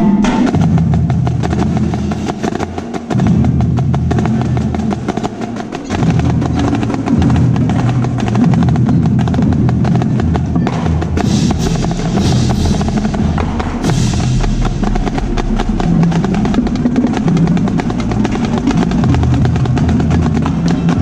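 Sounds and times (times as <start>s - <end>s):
lower drum part: 0.0s - 21.0s
snare drum strokes and rolls: 0.0s - 21.0s.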